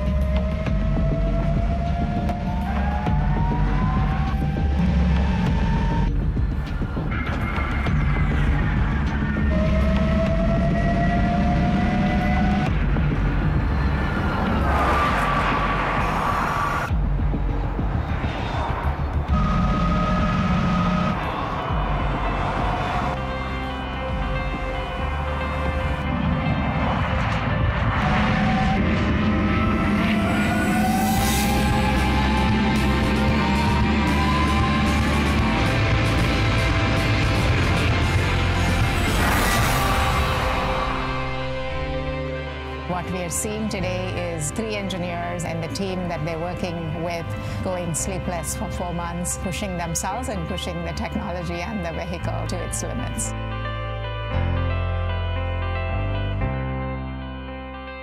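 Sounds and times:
background music: 0.0 - 58.0.

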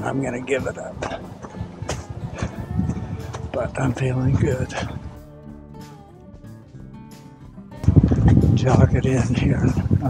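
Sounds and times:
footsteps on dirt trail: 0.8 - 5.2.

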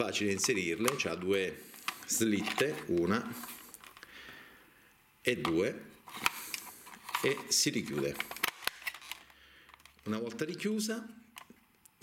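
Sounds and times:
faint handling noise: 0.0 - 4.4, 5.3 - 10.6
plastic cover clicking shut: 6.2 - 9.2.

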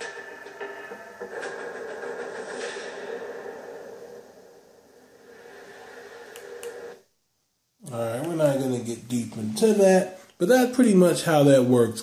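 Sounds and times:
droning tv music: 0.0 - 12.0.

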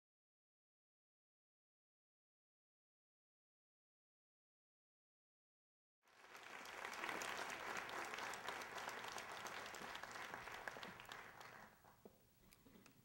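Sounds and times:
audience applauding: 6.1 - 12.1.

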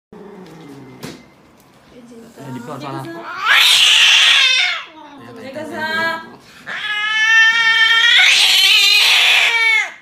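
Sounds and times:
cat yowling: 3.2 - 4.9, 6.7 - 10.0.

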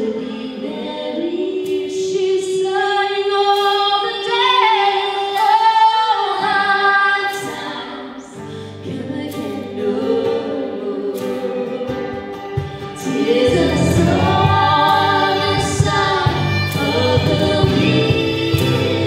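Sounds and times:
women singing in harmony: 0.0 - 19.0
strummed acoustic guitar: 3.5 - 19.0
fiddle: 11.2 - 19.0.

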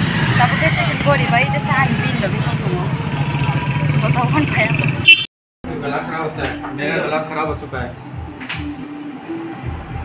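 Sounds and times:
woman talking: 0.4 - 4.8.

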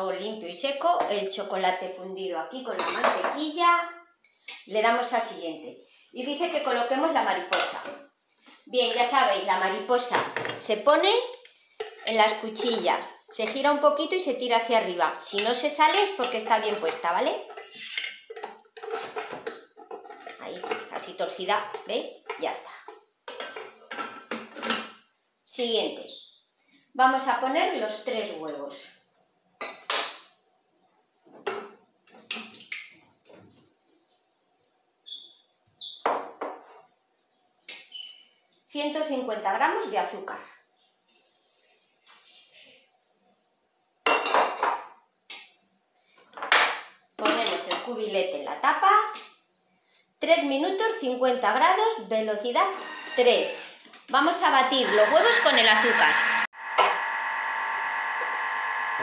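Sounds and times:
woman speaking: 0.0 - 4.0, 4.7 - 8.0, 8.7 - 11.4, 12.1 - 17.5, 20.4 - 22.9, 25.5 - 26.2, 27.0 - 29.0, 38.8 - 40.6, 47.2 - 49.2, 50.2 - 56.5.

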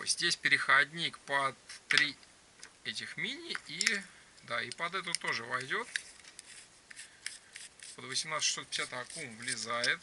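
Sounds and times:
flashlight handling rubbing: 4.7 - 10.0.

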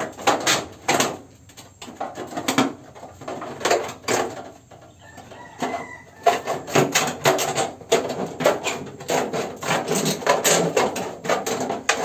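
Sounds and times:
hand shears cutting metal sheet: 6.6 - 12.0.

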